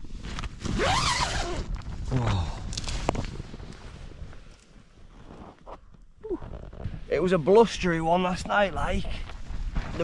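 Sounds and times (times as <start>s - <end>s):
tent zip pulled open: 0.2s - 3.0s.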